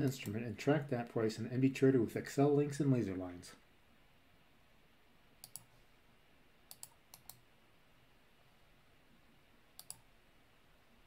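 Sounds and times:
computer mouse clicking: 5.4s - 5.7s, 6.7s - 7.4s, 9.8s - 10.1s.

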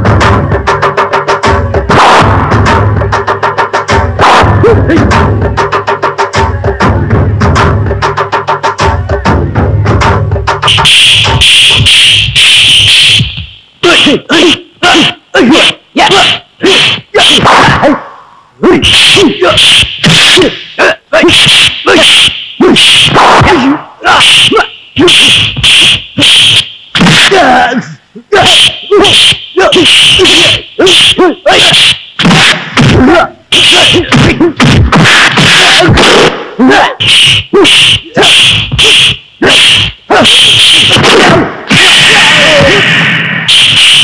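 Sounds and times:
grunted shouts: 13.8s - 19.6s, 22.7s - 25.1s, 27.2s - 31.7s, 32.9s - 38.7s, 39.4s - 42.9s.

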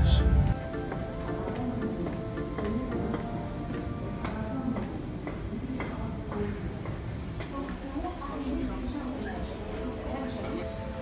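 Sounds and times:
music with held notes: 0.0s - 4.8s.

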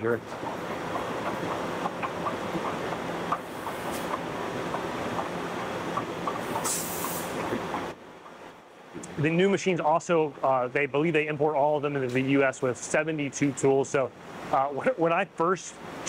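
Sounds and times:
machine mechanical hum: 0.0s - 16.0s
brief hiss: 6.6s - 7.4s.

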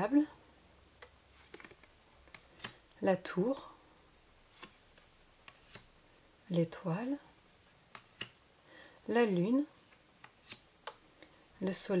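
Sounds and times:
tarot cards clicking: 1.0s - 3.0s, 4.5s - 6.0s, 7.8s - 8.4s, 9.8s - 11.3s.

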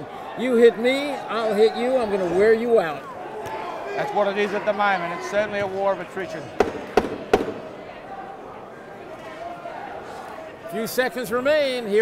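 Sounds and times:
low arena noise: 0.0s - 12.0s.

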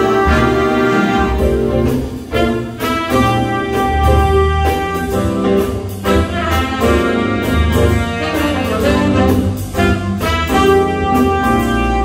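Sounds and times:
big jazz band playing: 0.0s - 12.0s
drums keeping steady beat: 0.0s - 12.0s.

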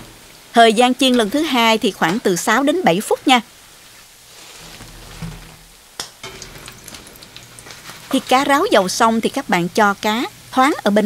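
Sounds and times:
hot oil sizzling and crackling: 0.0s - 11.0s.

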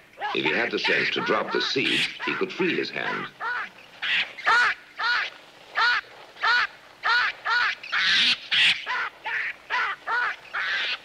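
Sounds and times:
baboon screaming over loudspeakers: 0.2s - 11.0s.

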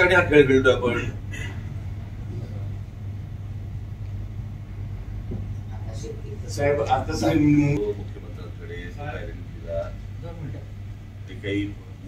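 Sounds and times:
faint rumbling: 0.0s - 12.0s
steady low hum: 0.0s - 12.0s.

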